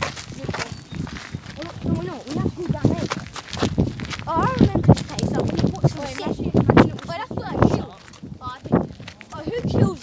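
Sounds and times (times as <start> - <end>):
footsteps: 0.0 - 10.0.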